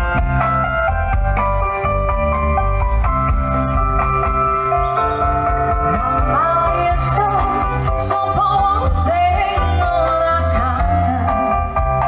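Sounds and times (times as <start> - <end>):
live band music through speakers: 0.0 - 12.0
person singing a melody: 5.9 - 11.7.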